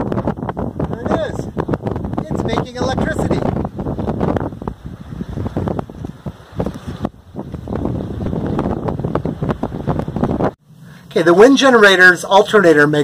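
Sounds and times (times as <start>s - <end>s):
wind gusting against microphone: 0.0s - 10.6s.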